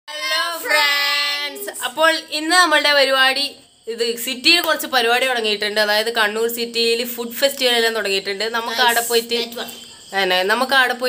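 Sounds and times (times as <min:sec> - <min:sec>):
boys singing greeting: 0:00.1 - 0:01.8
boys speaking: 0:00.1 - 0:02.5, 0:08.6 - 0:09.8.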